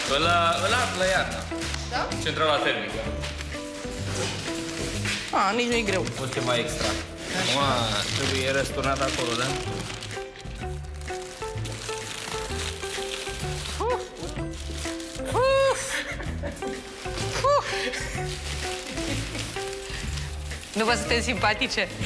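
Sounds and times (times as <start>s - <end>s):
background music with repeating beat: 0.0s - 7.5s, 9.5s - 22.0s.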